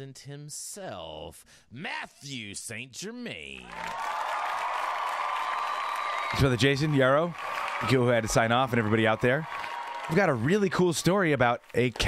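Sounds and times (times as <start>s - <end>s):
canned applause: 3.6s - 12.0s.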